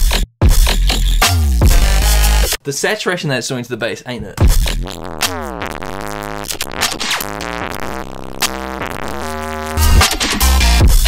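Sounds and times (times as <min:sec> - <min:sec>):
deep sub-bass: 0:00.0 - 0:02.5, 0:04.4 - 0:11.0.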